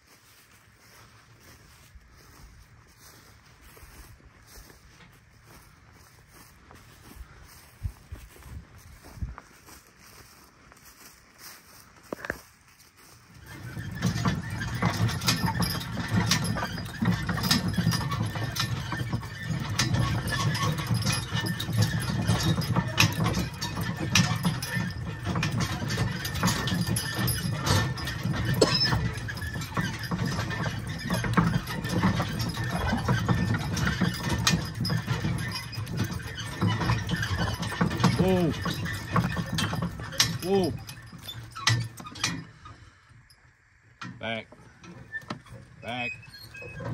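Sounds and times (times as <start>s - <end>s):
hooves clopping on dirt: 0.0s - 46.9s
wagon rumbling: 0.2s - 46.9s
harness chains clinking: 13.3s - 43.6s.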